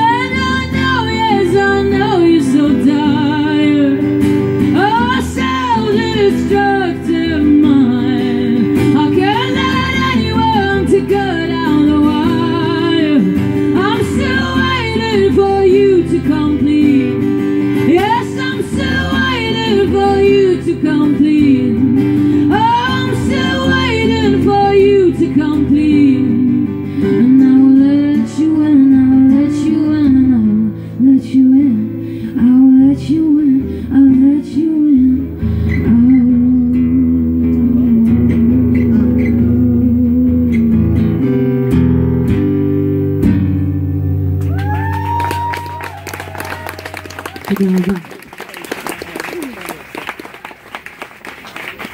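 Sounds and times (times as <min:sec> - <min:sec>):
strummed acoustic guitar: 0:00.0 - 0:44.4
audience cheering: 0:44.4 - 0:51.9.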